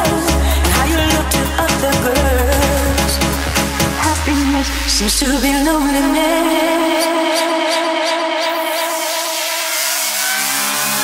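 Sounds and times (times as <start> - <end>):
held synth chords: 0.0 - 11.0
rising noise sweep: 8.0 - 11.0.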